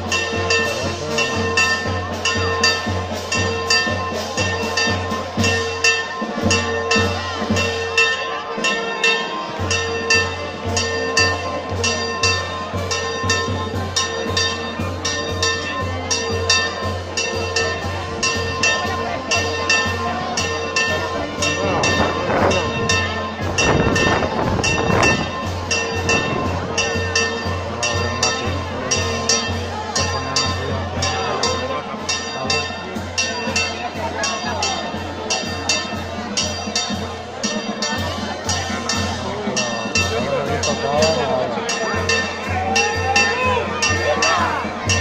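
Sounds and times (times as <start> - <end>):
church bells pealing: 0.0 - 45.0
crowd shouting and cheering: 0.0 - 45.0.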